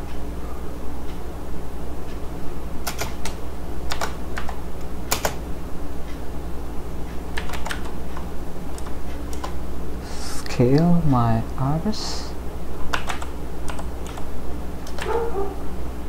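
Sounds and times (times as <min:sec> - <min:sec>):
steady low hum: 0:00.0 - 0:16.0
keyboard keys clicking: 0:02.8 - 0:05.4, 0:07.4 - 0:09.6, 0:12.9 - 0:15.2.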